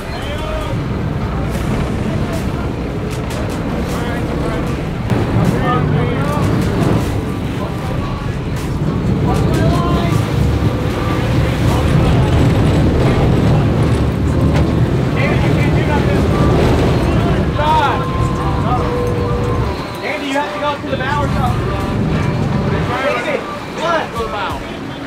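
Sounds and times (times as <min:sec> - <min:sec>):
boat engines rumbling: 0:00.0 - 0:25.0
water churning past stern: 0:00.0 - 0:25.0.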